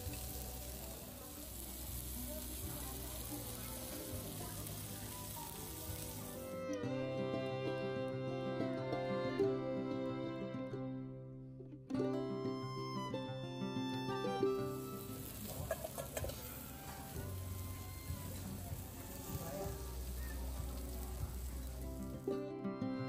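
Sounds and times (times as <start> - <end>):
meat sizzling on grill: 0.0 - 6.7, 13.4 - 22.4
background music: 0.0 - 23.0.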